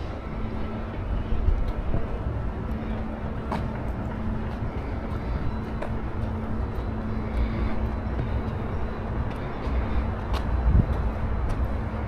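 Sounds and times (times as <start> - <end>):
faint hum: 0.0 - 12.0
low rumble: 0.0 - 12.0.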